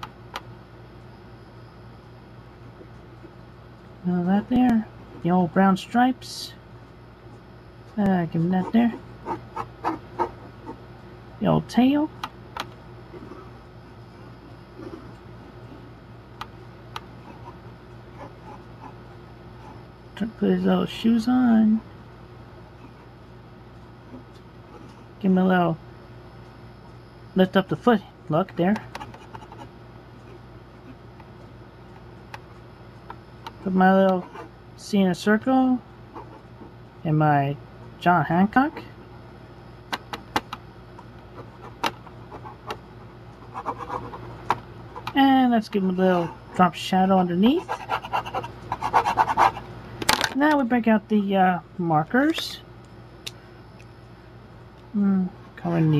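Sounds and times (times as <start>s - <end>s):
pencil drawing on paper: 47.5s - 49.6s.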